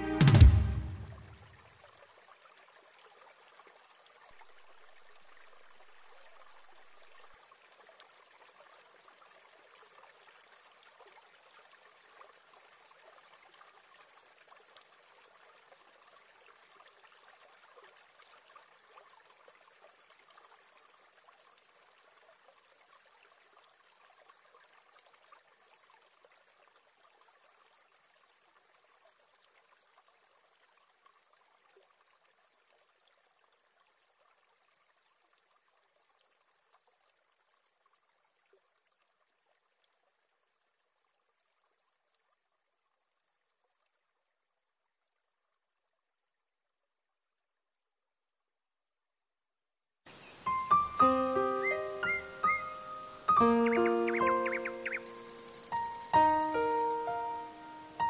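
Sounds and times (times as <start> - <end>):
faint hiss: 50.1 - 58.0.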